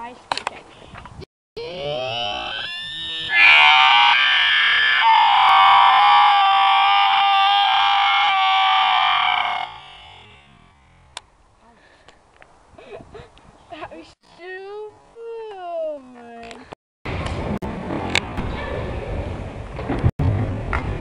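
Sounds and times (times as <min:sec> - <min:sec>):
boy screaming: 0:01.6 - 0:10.4.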